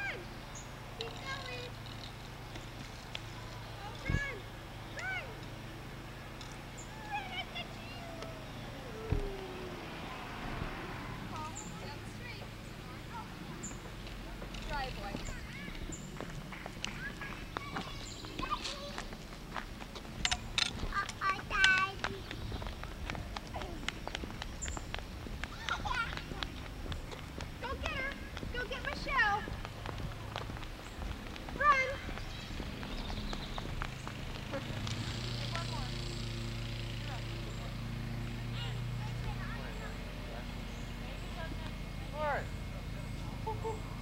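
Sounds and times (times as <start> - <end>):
young children squealing: 6.8 - 11.4.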